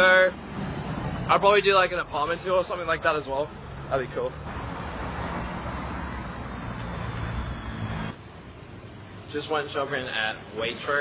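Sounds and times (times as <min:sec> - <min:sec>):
motor vehicle rumbling: 0:00.0 - 0:11.0.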